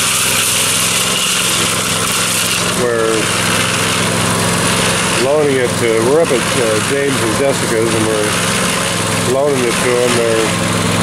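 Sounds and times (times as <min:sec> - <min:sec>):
small gasoline engine running: 0:00.0 - 0:11.0.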